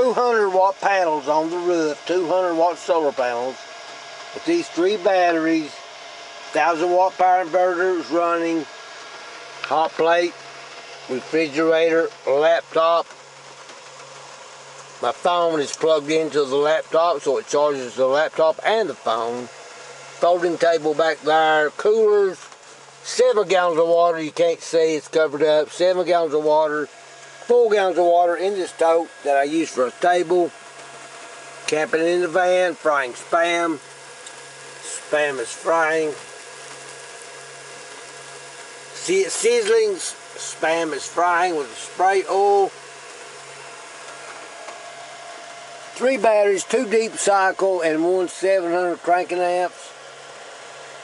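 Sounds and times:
low electrical hum: 0.0 - 51.0
even hiss: 9.6 - 51.0
meat sizzling in a skillet: 28.7 - 46.1.

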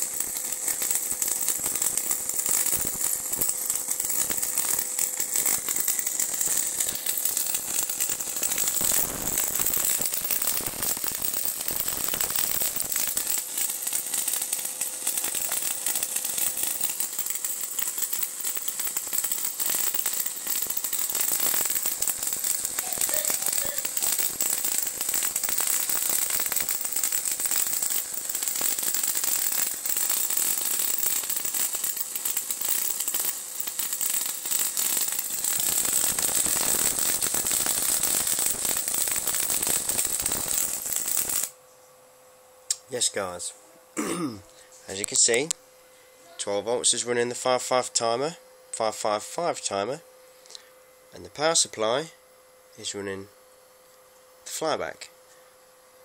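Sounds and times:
high-voltage arc crackling: 0.0 - 41.6, 44.9 - 45.6.

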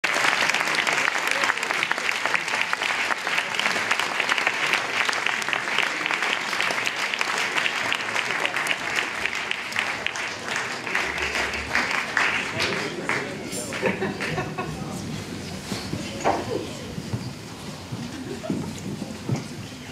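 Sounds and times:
audience applauding: 0.0 - 15.6.

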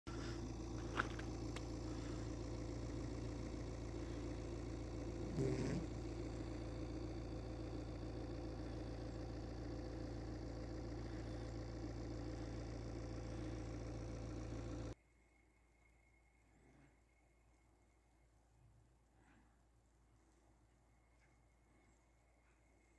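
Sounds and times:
low mechanical hum: 0.1 - 15.0.

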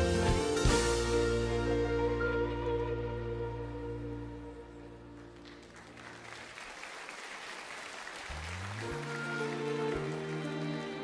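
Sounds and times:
orchestra playing slow piece: 0.0 - 6.4, 8.2 - 11.0
audience applause: 5.1 - 11.0.

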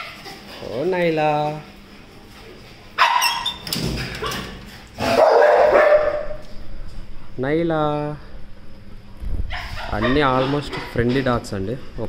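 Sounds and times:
dog yipping and whining: 3.0 - 4.4, 9.5 - 10.9
metal kennel gate clattering: 3.1 - 4.6.

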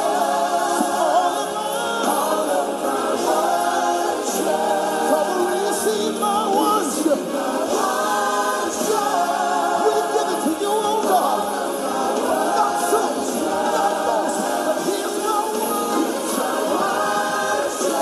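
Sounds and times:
gospel choir singing: 0.0 - 18.0.

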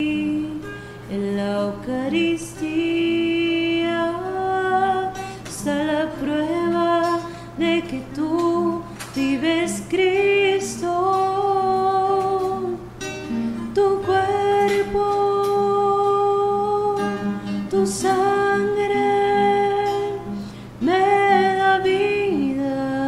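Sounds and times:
plucked acoustic guitar: 0.0 - 23.0
person singing long notes: 13.6 - 23.0.

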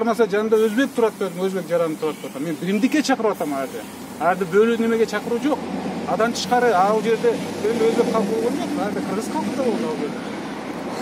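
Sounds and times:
man speaking: 0.0 - 10.2
outdoor background noise: 0.0 - 11.0.

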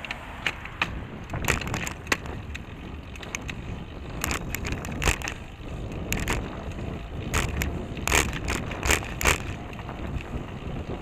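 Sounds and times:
tyres on pavement: 0.0 - 11.0
wind rumble: 0.0 - 11.0.

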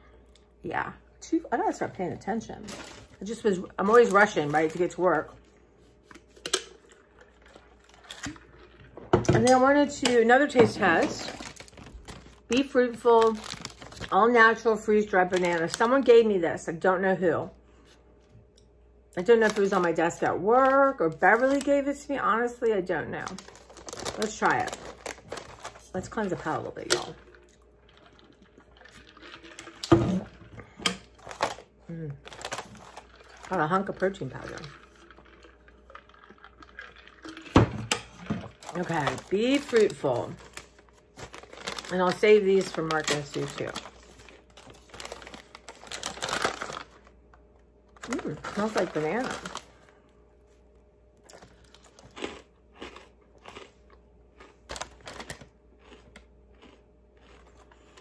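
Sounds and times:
dry crunches of chewing: 27.1 - 29.9, 34.4 - 37.6, 51.2 - 58.0.

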